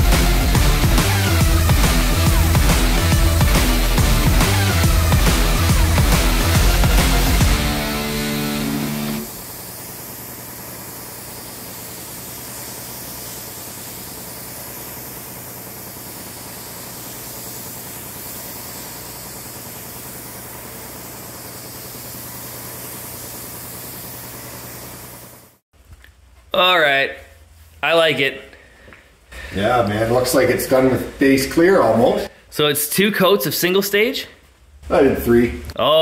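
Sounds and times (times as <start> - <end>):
background music: 0.0 - 9.3
paint spray gun hissing: 0.0 - 25.6.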